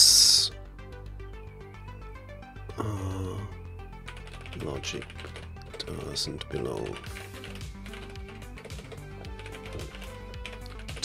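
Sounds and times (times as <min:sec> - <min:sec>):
background music: 0:00.0 - 0:11.0
computer keyboard typing: 0:04.1 - 0:11.0.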